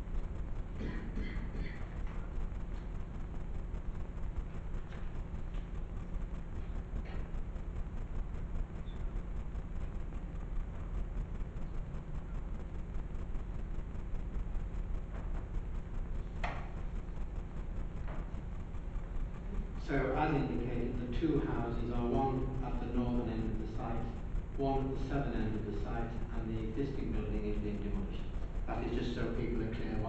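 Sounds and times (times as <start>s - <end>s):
low room rumble: 0.0s - 30.0s.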